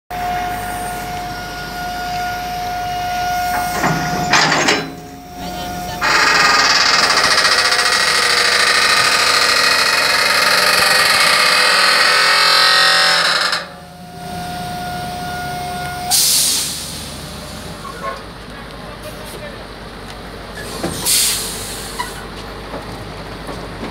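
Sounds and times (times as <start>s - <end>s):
steady high tone: 0.1s - 16.1s
engine whining: 0.1s - 17.9s
diesel engine and hydraulics working: 0.1s - 23.9s.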